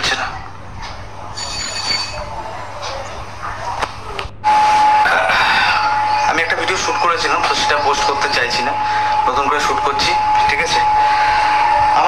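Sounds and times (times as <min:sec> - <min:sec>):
loud steady high tone: 0:01.2 - 0:02.4, 0:04.4 - 0:12.0.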